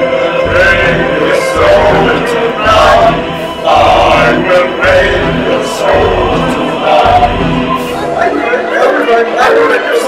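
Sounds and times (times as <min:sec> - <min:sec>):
young male voices singing: 0:00.0 - 0:10.0.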